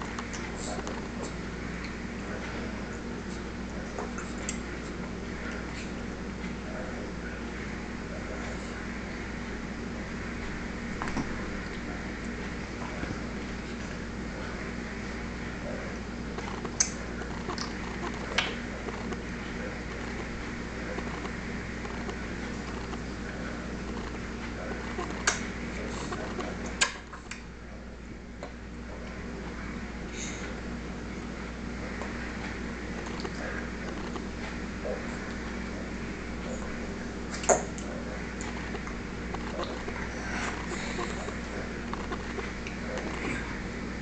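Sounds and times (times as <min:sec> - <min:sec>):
room hum and hiss: 0:00.0 - 0:44.0.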